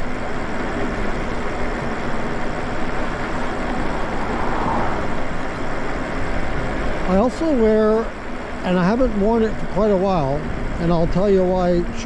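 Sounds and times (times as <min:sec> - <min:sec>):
wind and tyre noise: 0:00.0 - 0:12.0.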